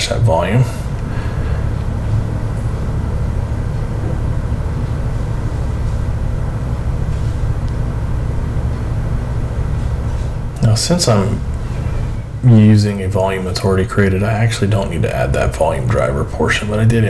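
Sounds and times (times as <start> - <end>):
low rumble and hum: 0.0 - 17.0.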